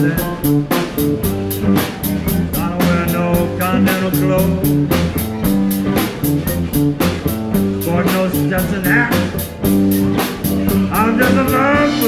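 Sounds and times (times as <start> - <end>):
bass: 0.0 - 12.0
blues guitar lead: 0.0 - 12.0
drums with steady cymbal beat: 0.0 - 12.0.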